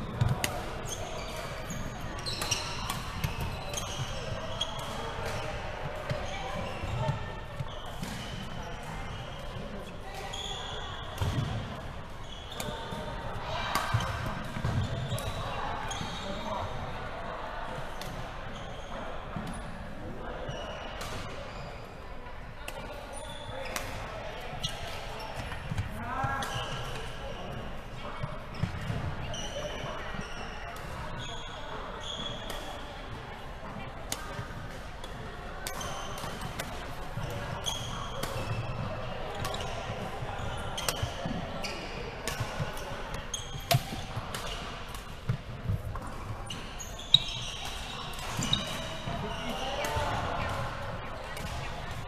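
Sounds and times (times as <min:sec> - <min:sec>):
players' voices: 0:00.0 - 0:52.0.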